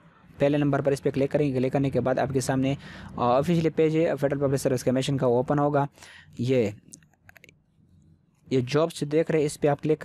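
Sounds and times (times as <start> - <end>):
computer mouse clicks: 6.9 - 8.1.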